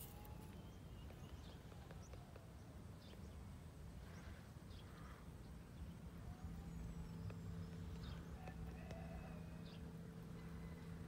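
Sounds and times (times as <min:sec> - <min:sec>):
faint background rumble: 0:00.0 - 0:11.0.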